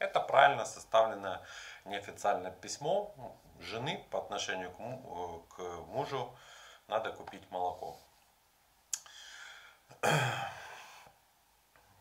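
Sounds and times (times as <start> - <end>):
man breathing in: 1.4 - 1.8, 6.4 - 6.9, 9.0 - 11.2
mouth click: 8.9 - 9.1
man sighing: 9.0 - 11.1.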